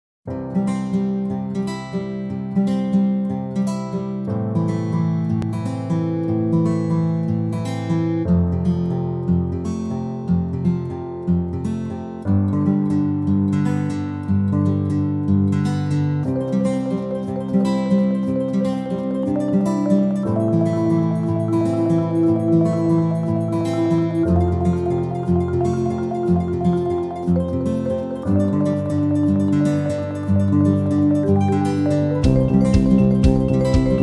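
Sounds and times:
plucked acoustic guitar: 0.3s - 34.0s.

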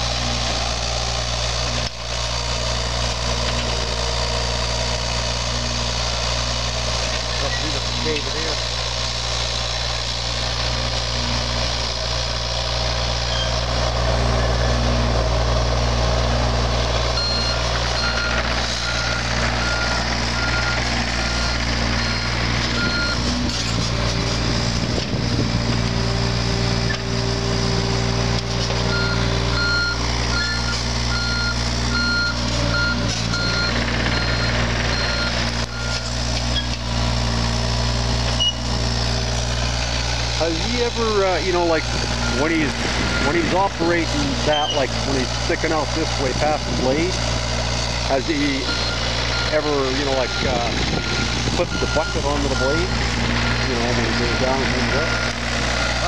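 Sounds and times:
excavator diesel engine running: 0.0s - 56.0s
travel alarm beeping: 17.2s - 23.3s, 28.9s - 36.1s, 48.6s - 49.6s, 50.2s - 52.8s.

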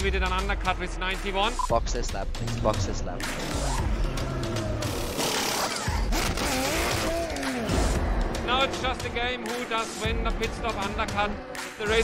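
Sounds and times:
background music: 0.0s - 12.0s
racing car at pit stop: 3.3s - 8.0s.

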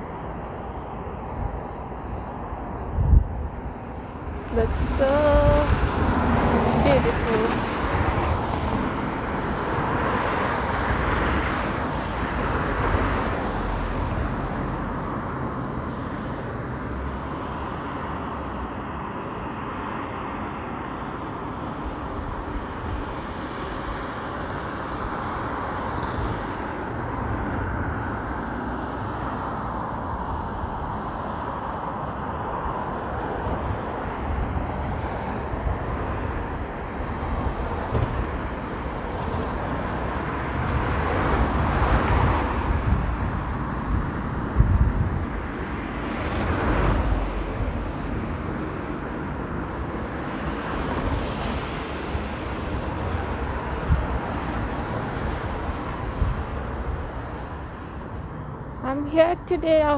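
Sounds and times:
city traffic noise: 0.0s - 59.9s
vehicle passing: 40.4s - 59.9s.

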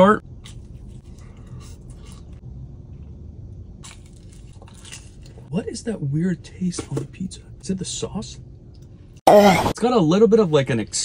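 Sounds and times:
low hum inside a car: 0.0s - 9.5s.

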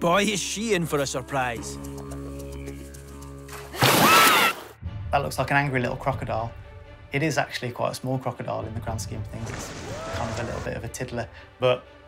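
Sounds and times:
held background music notes: 0.0s - 4.0s, 4.8s - 12.0s
loud water splash: 3.7s - 4.7s.

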